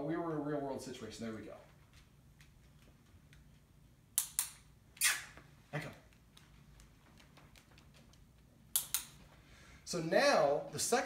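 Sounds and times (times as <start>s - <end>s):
training clicker clicks: 6.1s - 9.2s.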